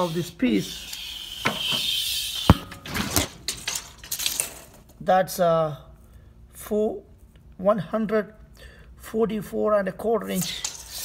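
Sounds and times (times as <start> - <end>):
tape measure clicking and rattling: 2.8 - 4.8, 10.3 - 11.0.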